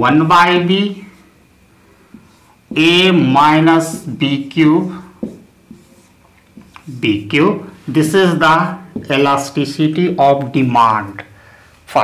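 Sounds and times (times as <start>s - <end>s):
marker pen writing on whiteboard: 2.0s - 11.2s.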